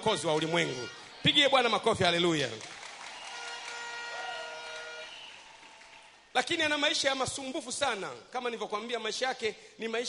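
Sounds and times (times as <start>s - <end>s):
crowd clapping and cheering: 0.0s - 7.2s.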